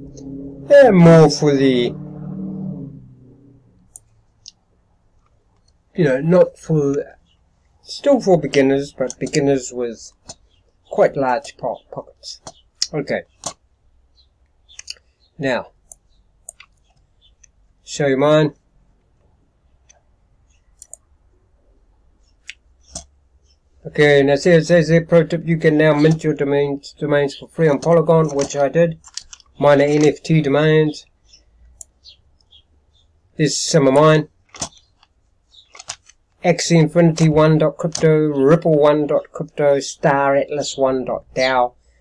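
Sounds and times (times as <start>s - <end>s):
computer mouse clicks: 20.8s - 21.0s, 34.5s - 36.2s.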